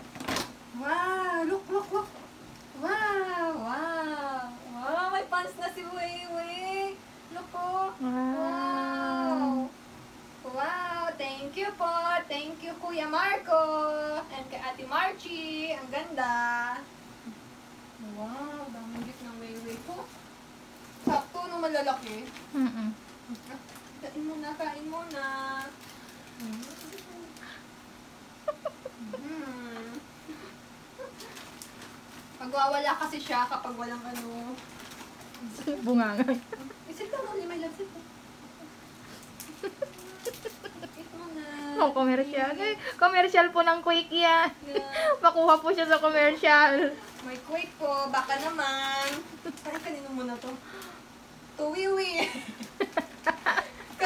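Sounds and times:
sing-song humming voice: 7.8 - 9.8, 28.4 - 31.3
paper gift bag rustle: 20.8 - 27.5, 31.0 - 36.5, 39.1 - 41.3, 45.8 - 50.8.

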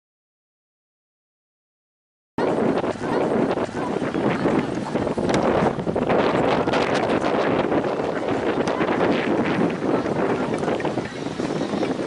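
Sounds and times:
wind buffeting microphone: 2.4 - 12.0.

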